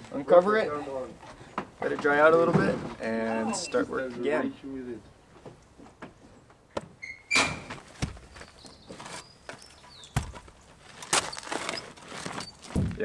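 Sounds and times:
knocks and thuds on timber: 6.8 - 8.4, 10.1 - 11.2, 12.6 - 13.0.

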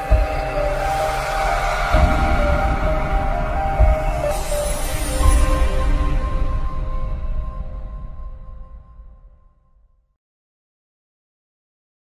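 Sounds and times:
heavy low hit: 0.0 - 9.3
synth chords over deep bass: 0.0 - 9.4.

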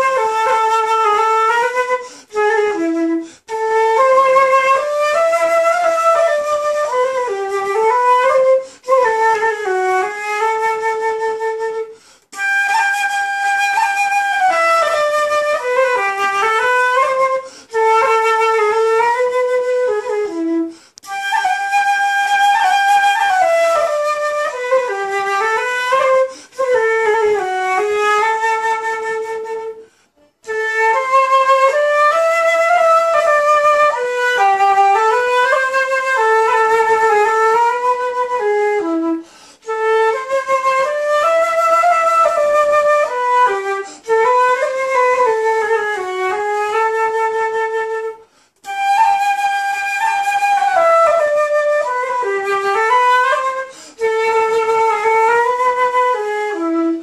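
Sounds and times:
solo flute melody: 0.0 - 57.0.

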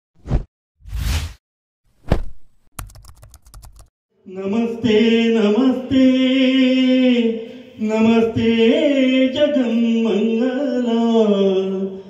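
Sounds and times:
thump: 2.0 - 2.5
rapid typing-like clicks: 2.8 - 3.9.

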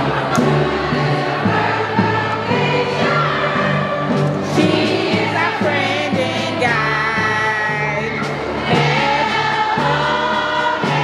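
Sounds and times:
choir singing sustained chords: 0.0 - 7.3, 8.1 - 11.0.

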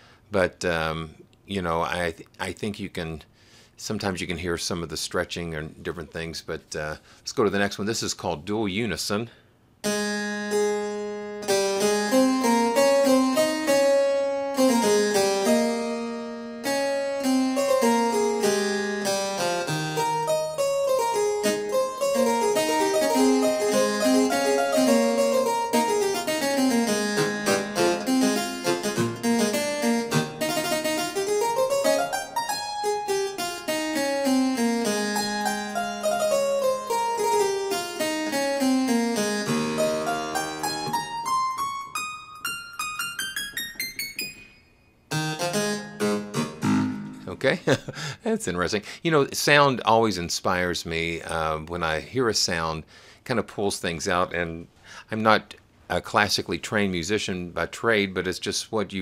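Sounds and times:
harpsichord chords and runs: 9.8 - 48.2.

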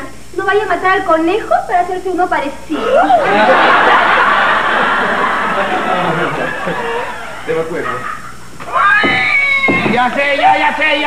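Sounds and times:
high-pitched cat-like wail: 7.8 - 9.9.

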